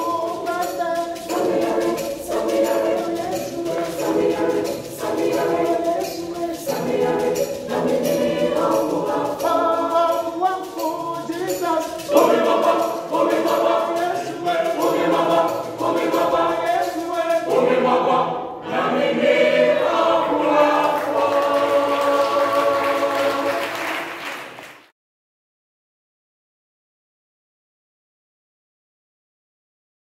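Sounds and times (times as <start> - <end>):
children's choir singing: 0.0 - 24.2.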